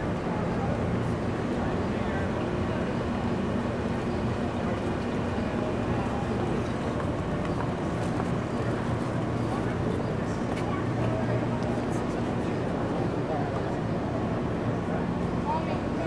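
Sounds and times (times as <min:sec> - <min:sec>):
people talking: 0:00.0 - 0:16.0.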